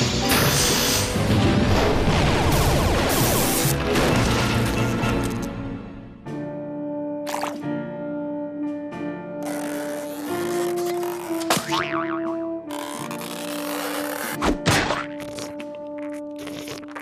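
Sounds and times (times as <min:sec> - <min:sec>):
cartoon background music: 0:00.0 - 0:17.0
springy boing: 0:11.5 - 0:12.5.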